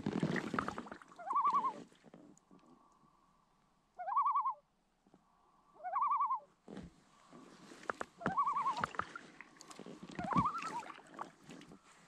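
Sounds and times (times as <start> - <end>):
paddle splashing in water: 0.0 - 2.3, 7.3 - 12.0
loon tremolo calls: 1.2 - 1.8, 4.0 - 4.6, 5.8 - 6.5, 8.2 - 8.9.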